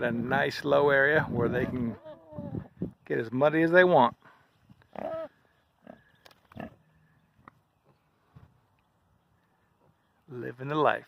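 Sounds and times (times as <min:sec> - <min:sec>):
hogs grunting: 0:04.9 - 0:07.0.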